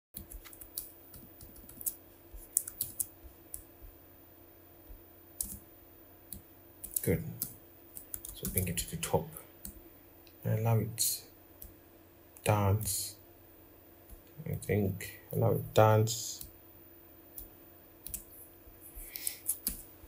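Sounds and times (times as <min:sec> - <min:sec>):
keyboard and mouse clicking: 0:00.2 - 0:03.7, 0:05.4 - 0:05.6, 0:06.3 - 0:08.7, 0:17.4 - 0:18.2, 0:19.1 - 0:19.8.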